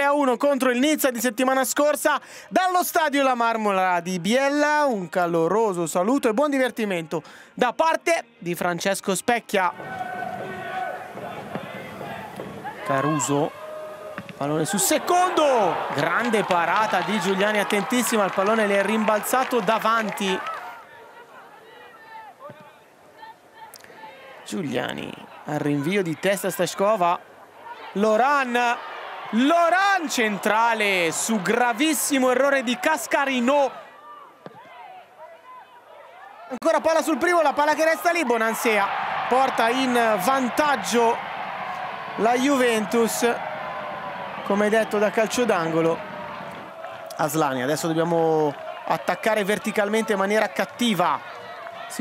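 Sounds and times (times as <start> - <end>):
murmur of spectators: 7.9 - 52.0
players calling out: 9.7 - 22.5, 27.2 - 35.8, 36.5 - 52.0.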